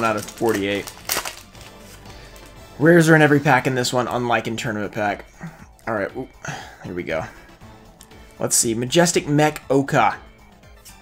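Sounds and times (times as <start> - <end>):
foil wrapper crackling: 0.0 - 2.6.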